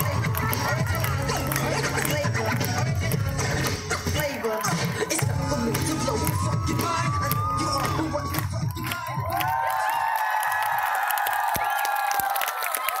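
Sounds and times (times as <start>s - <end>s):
hip-hop dance music: 0.0s - 10.1s
children cheering and shouting: 4.2s - 13.0s.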